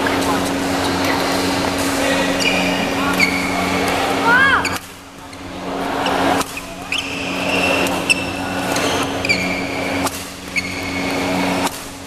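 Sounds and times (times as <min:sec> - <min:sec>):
steady low hum: 0:00.0 - 0:12.0
shoes squeaking on court mat: 0:00.8 - 0:03.9, 0:04.6 - 0:11.8
racket striking shuttlecock: 0:09.8 - 0:12.0.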